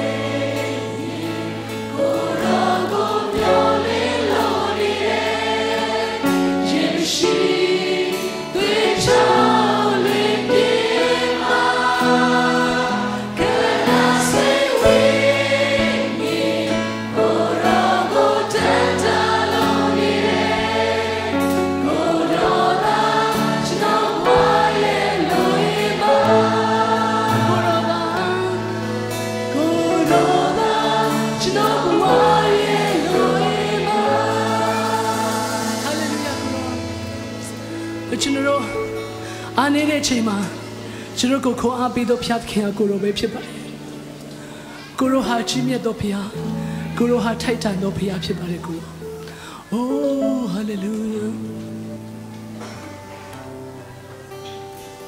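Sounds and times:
group singing with acoustic guitars: 0.0 - 55.0.

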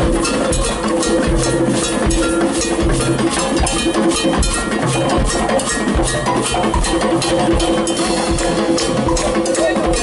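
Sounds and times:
cowbell beating: 0.0 - 10.0
latin band playing: 0.0 - 10.0.

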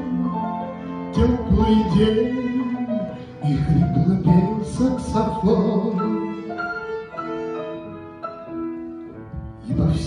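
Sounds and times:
violin playing waltz: 0.0 - 9.6
grand piano: 0.0 - 10.0.

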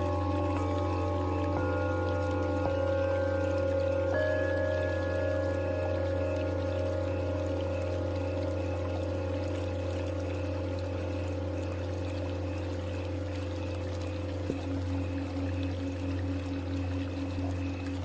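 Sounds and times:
bowl struck: 0.0 - 18.0
running water: 0.0 - 18.0
singing bowls ringing: 0.0 - 18.0.

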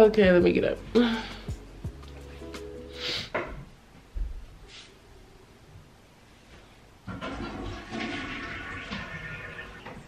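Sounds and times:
toilet flushing: 7.1 - 10.0.

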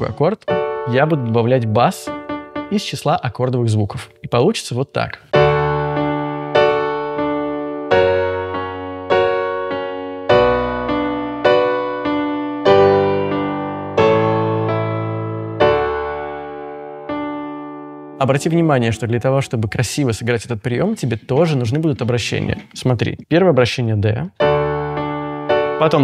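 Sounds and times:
solo piano chords: 0.0 - 4.7, 5.3 - 21.0, 24.4 - 26.0.

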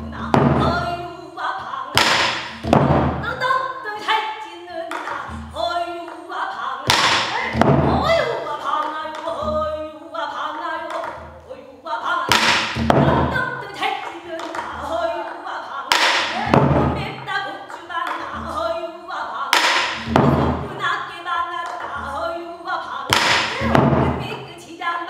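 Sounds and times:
barrel drum strokes and thuds: 0.0 - 1.0, 2.0 - 3.4, 6.9 - 8.2, 12.3 - 13.4, 15.9 - 17.3, 19.5 - 20.8, 23.1 - 24.4
woman singing in strained voice: 0.0 - 25.0.

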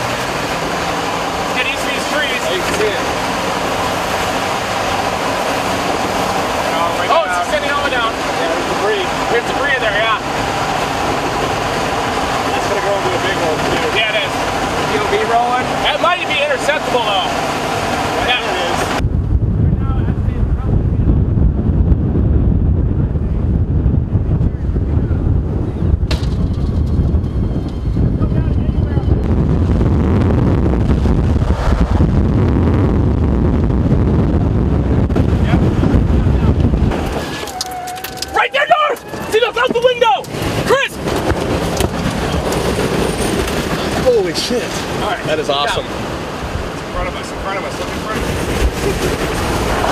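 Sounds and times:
storm wind buffeting microphone: 0.0 - 49.9
excited voices: 37.3 - 41.0.

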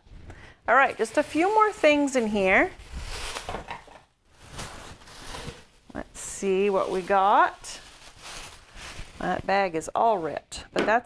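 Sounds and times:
bag rustling: 1.0 - 5.9, 6.5 - 9.8.

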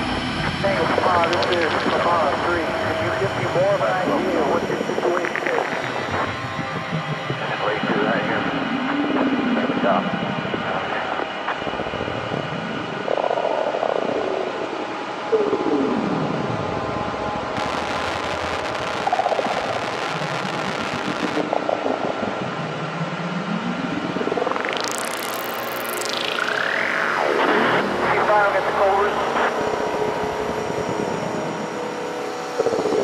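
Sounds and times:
electronic synth drones: 0.0 - 33.0
rising synth sweep: 17.6 - 32.4.

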